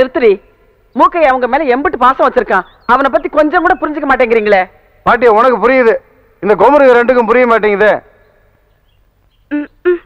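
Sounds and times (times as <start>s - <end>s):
high-pitched short vocal sound: 9.5s - 10.0s.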